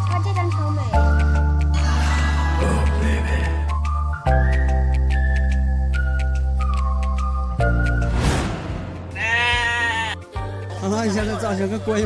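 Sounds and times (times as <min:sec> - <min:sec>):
light background music: 0:00.0 - 0:12.0
comic bleating sound effect: 0:09.1 - 0:10.2.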